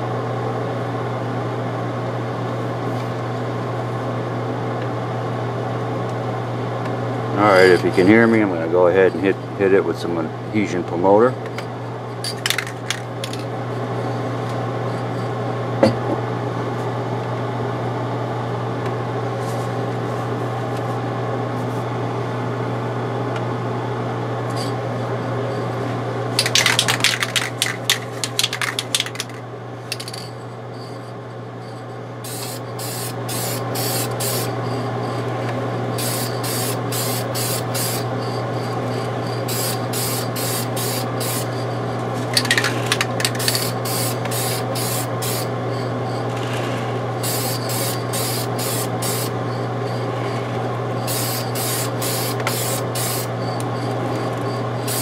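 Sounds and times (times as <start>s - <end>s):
spray booth fan hum: 0.0s - 55.0s
clatter of clicks: 26.4s - 30.2s
aerosol can spraying: 47.2s - 49.3s, 51.1s - 53.3s.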